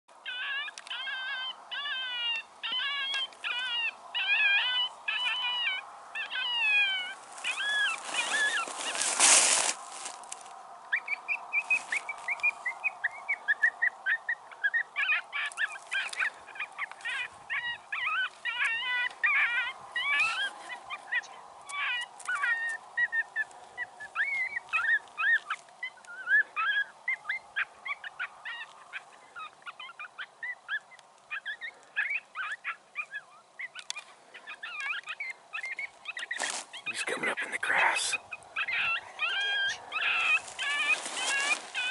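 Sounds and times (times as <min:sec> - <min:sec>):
pitch-bending animal calls: 0:00.2 - 0:09.2, 0:10.9 - 0:41.9
short high animal calls: 0:34.6 - 0:41.9.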